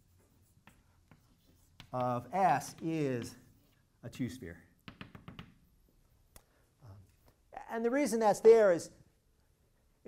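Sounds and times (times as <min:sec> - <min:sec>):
chalk tapping and scratching: 0:00.0 - 0:03.9, 0:04.8 - 0:06.2.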